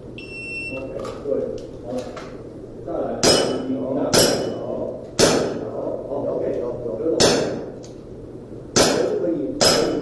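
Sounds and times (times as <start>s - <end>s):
metallic ring of steel target: 3.2s - 5.6s.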